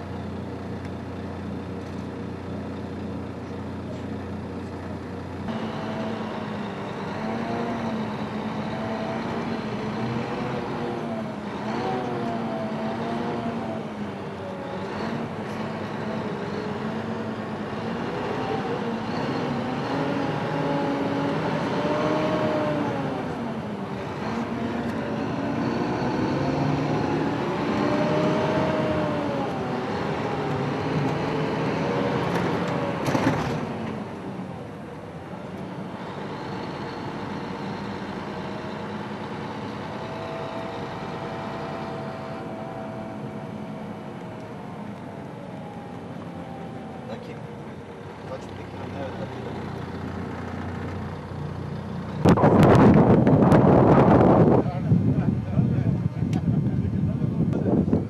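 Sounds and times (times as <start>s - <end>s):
car engine from inside: 0.0s - 58.0s.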